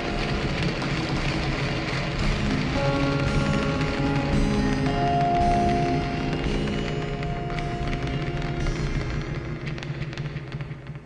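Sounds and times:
distorted noise music droning: 0.0s - 11.0s.

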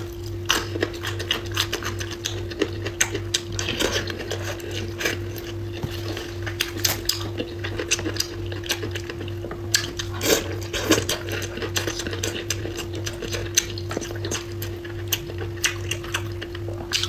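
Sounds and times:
chewing and mouth noises: 0.0s - 17.0s.

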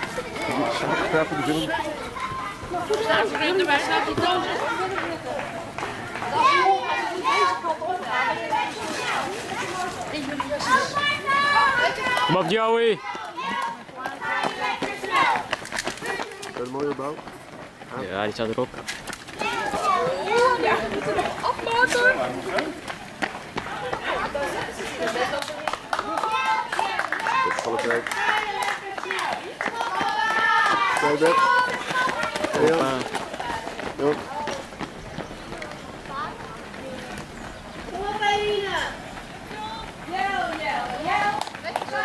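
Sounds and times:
spectators calling out: 0.0s - 16.5s, 19.3s - 42.0s
people talking nearby: 0.0s - 42.0s
runners' footfalls: 0.0s - 42.0s
long drawn-out shout: 26.0s - 32.6s.

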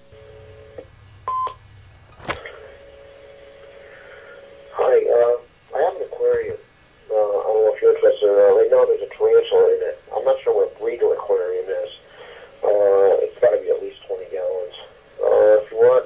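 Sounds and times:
recorded phone message voice: 4.7s - 12.0s, 12.6s - 16.0s.

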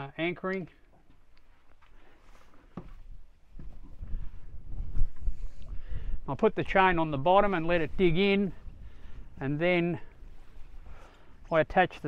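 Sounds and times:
wind buffeting microphone: 2.8s - 12.0s.

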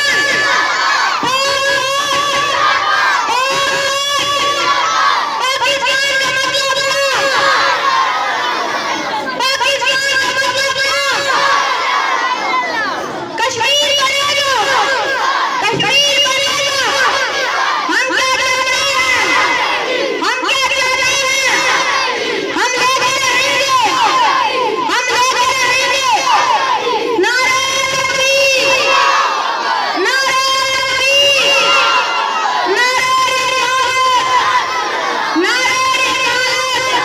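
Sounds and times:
boy shouting over loudspeaker: 0.0s - 37.0s
children shouting: 0.0s - 37.0s.

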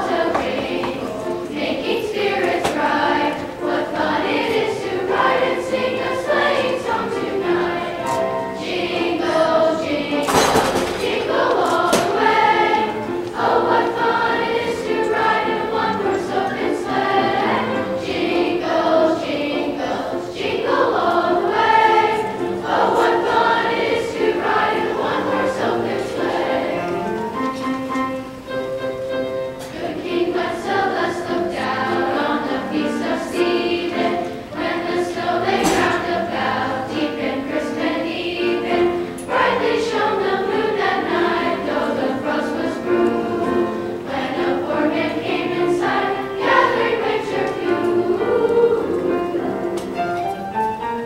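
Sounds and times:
school chorus singing: 0.0s - 51.0s.

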